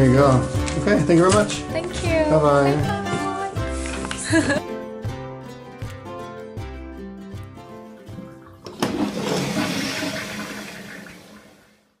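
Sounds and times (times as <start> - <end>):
toilet flushing: 8.0 - 12.0.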